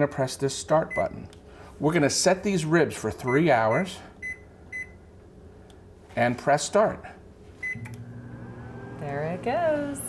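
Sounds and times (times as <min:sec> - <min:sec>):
oven beep: 0:03.2 - 0:05.0, 0:07.6 - 0:08.4
oven humming: 0:07.6 - 0:10.0.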